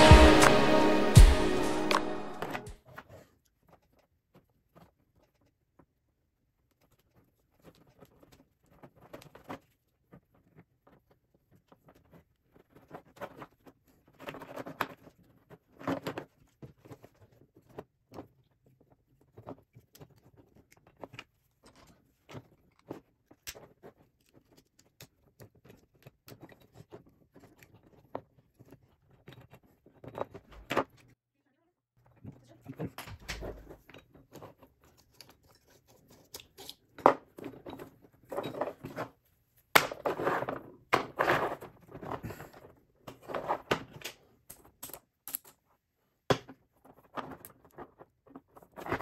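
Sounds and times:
small metal clicks and scrapes: 0:02.9 - 0:31.2, 0:33.6 - 0:39.2.

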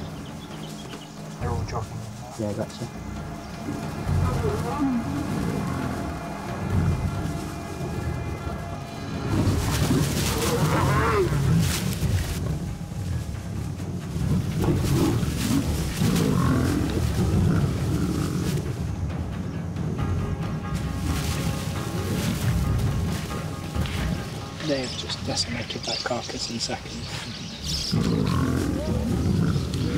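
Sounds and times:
lions growling: 0:02.8 - 0:12.4, 0:14.2 - 0:18.7, 0:26.9 - 0:29.9.

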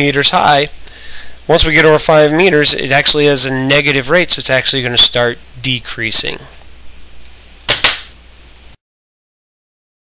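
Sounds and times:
low steady hum: 0:00.0 - 0:08.8.

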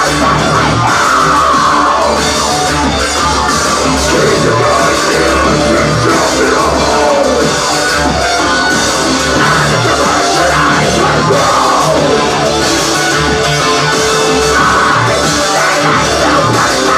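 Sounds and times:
electric bass guitar: 0:00.0 - 0:16.9
heavy drum beat: 0:00.0 - 0:16.9
industrial rock band playing: 0:00.0 - 0:16.9.

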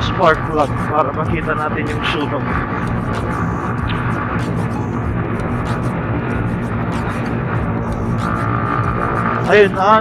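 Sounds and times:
motorcycle engine running: 0:00.0 - 0:10.0
road and wind noise: 0:00.0 - 0:10.0.

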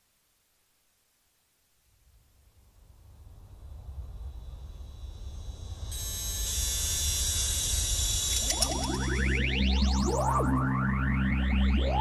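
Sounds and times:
bright hissing noise: 0:02.4 - 0:09.5
steady high tones: 0:06.0 - 0:12.0.

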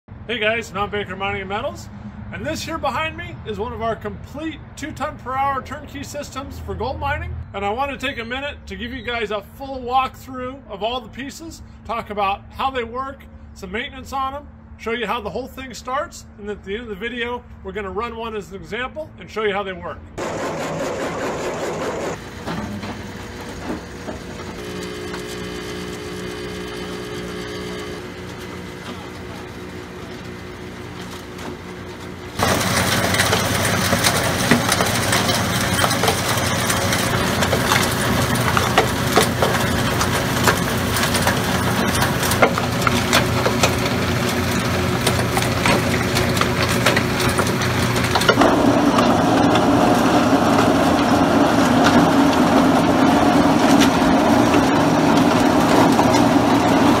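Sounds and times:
machinery motor hum: 0:20.2 - 0:57.0.

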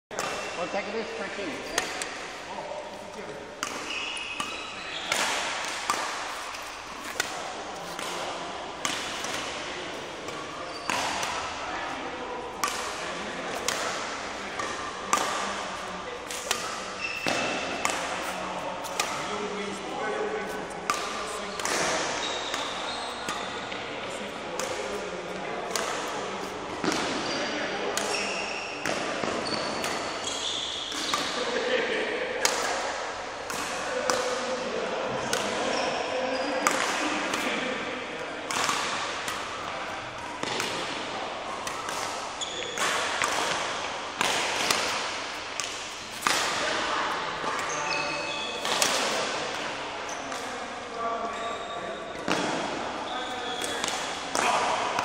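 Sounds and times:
rackets hitting shuttlecocks: 0:00.1 - 0:50.7, 0:52.2 - 0:55.0
shoes squeaking on floor: 0:00.2 - 0:08.0, 0:10.5 - 0:11.2, 0:16.9 - 0:19.0, 0:21.2 - 0:23.7, 0:26.4 - 0:31.3, 0:35.7 - 0:36.6, 0:42.4 - 0:42.9, 0:47.5 - 0:48.6, 0:51.3 - 0:52.3, 0:53.1 - 0:53.8.

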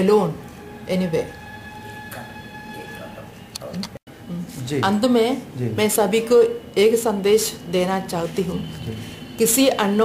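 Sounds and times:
high-pitched tone: 0:00.6 - 0:05.0.

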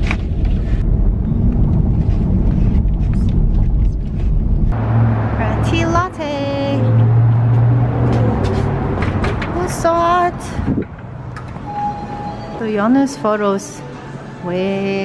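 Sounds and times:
car road rumble: 0:00.0 - 0:12.4.

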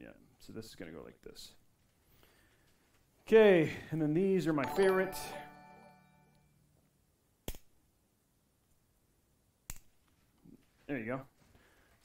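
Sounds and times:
notification chime: 0:04.6 - 0:06.5.

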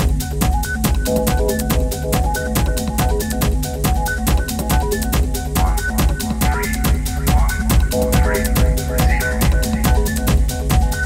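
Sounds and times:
techno music: 0:00.0 - 0:11.0.

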